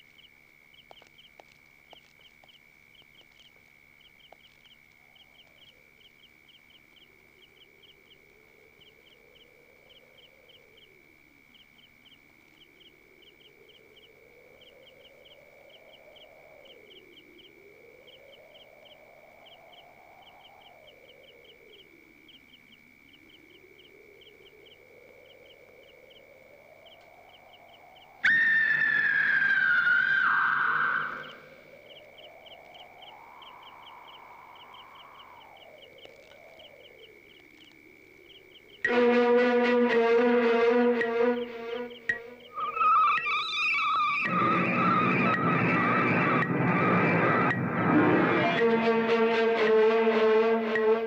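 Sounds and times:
insect trill and chirps: 0.0 - 51.0
shrill whistle-like tone: 28.2 - 31.4, 41.7 - 49.1
low eerie tone: 44.2 - 51.0.

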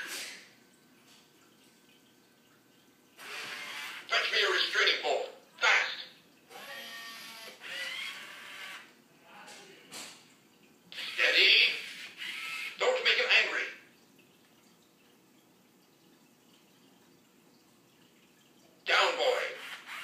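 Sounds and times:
toy robot synthesized voice: 11.0 - 12.0.

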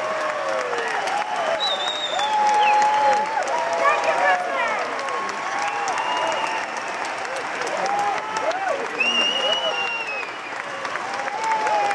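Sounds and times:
audience applauding and cheering: 0.0 - 11.9
high whistle-like tone: 1.5 - 2.3.

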